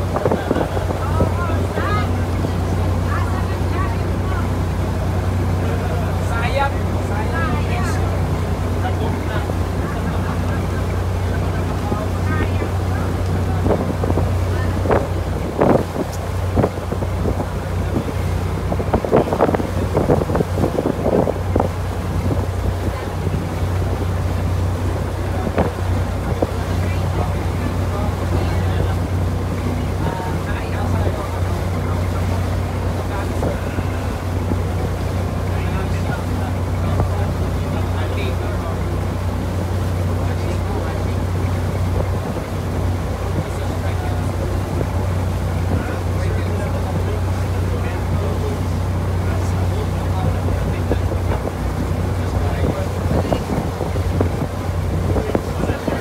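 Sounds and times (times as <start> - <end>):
motor boat engine droning: 0.0 - 56.0
water noise: 0.0 - 56.0
wind noise on microphone: 0.0 - 56.0.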